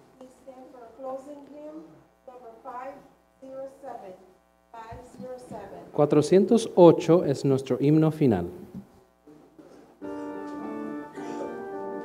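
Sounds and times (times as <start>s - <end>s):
faint electrical hum: 0.0s - 12.0s
people talking quietly: 9.3s - 12.0s.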